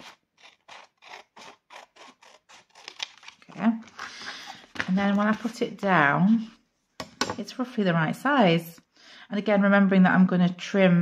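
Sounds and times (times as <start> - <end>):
scissors cutting paper: 0.0 - 3.7.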